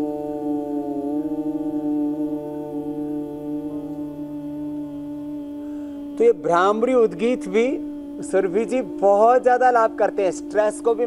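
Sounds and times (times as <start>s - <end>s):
people humming steadily: 0.0s - 11.0s.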